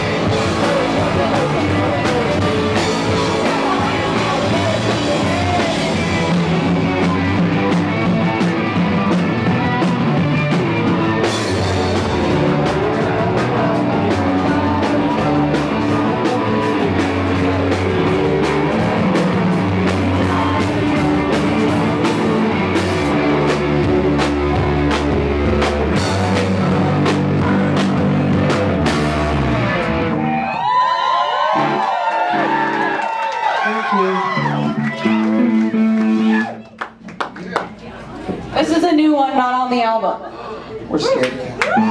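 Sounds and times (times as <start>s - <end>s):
live punk band playing: 0.0s - 37.2s.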